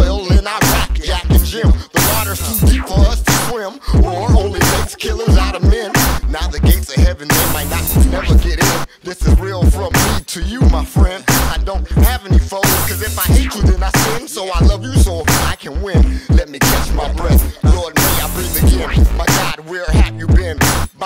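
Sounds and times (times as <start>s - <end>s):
rapping over a drum beat: 0.0s - 21.0s.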